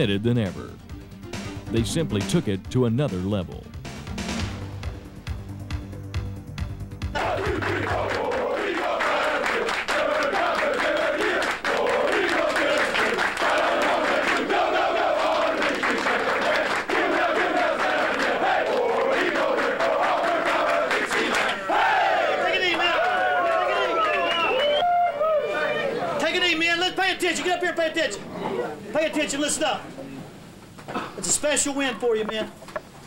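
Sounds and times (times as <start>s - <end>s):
background music: 0.0s - 21.3s
crowd shouting and chanting: 7.2s - 26.2s.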